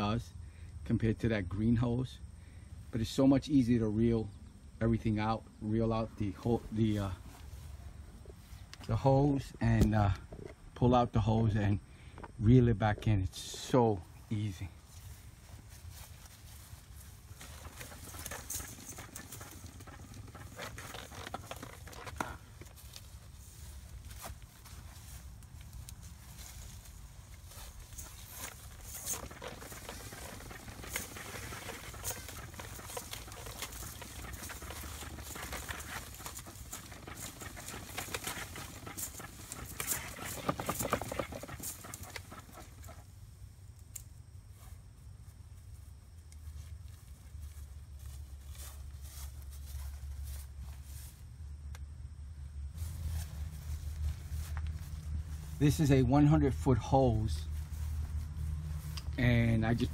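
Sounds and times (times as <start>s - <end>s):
hose dragged across grass: 14.9s - 43.0s, 52.7s - 56.6s.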